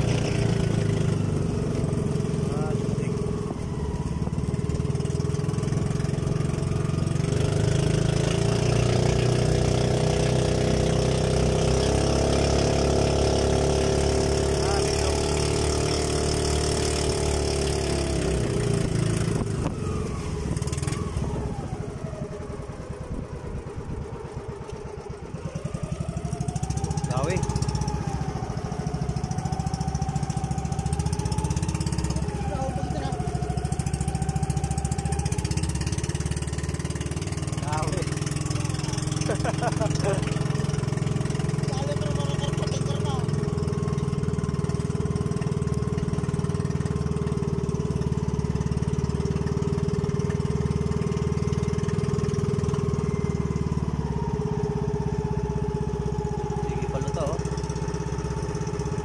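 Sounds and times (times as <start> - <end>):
boat engine running: 0.0 - 59.0.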